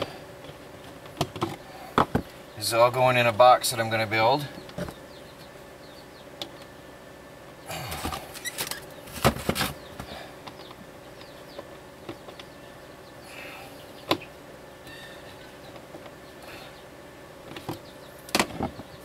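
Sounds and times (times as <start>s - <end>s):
faint steady hum: 0.0s - 19.0s
wires rustling and scraping: 7.8s - 10.1s.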